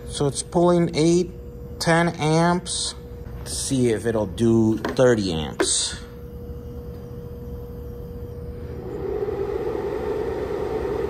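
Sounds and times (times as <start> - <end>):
inverter humming and buzzing: 0.0 - 11.0.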